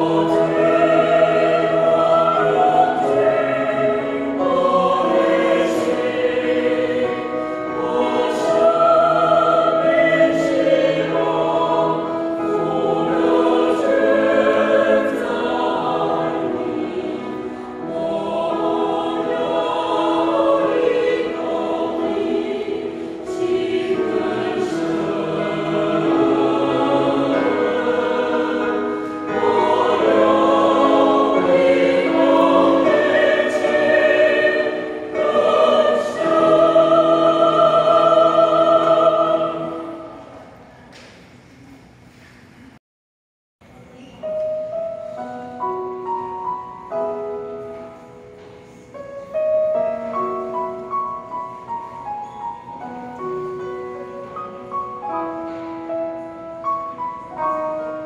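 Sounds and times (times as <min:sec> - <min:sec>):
mixed choir singing a hymn: 0:00.0 - 0:41.1.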